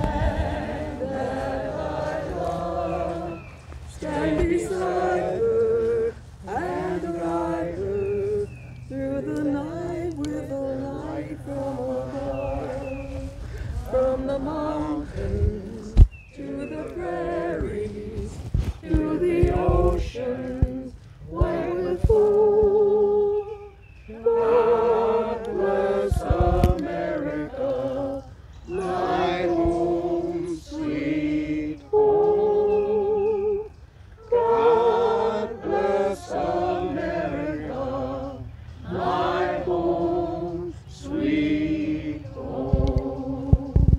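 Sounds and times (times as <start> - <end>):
choir singing a hymn: 0.0 - 43.9.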